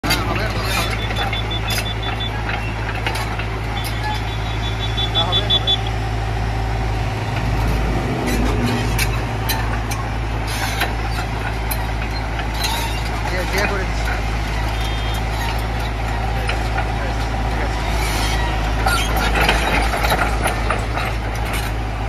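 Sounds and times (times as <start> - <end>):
excavator diesel engine idling: 0.0 - 22.0
short high beeps: 3.8 - 6.0.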